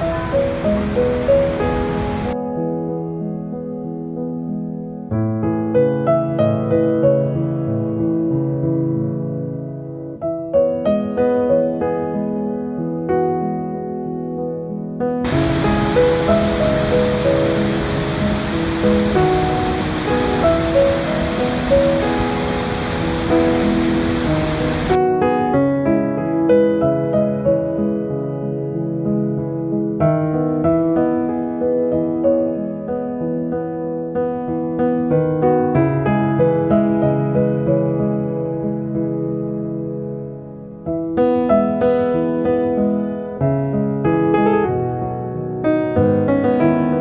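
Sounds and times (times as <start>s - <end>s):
waterfall rushing: 0.0s - 2.4s, 15.3s - 25.0s
slow piano notes: 0.0s - 47.0s.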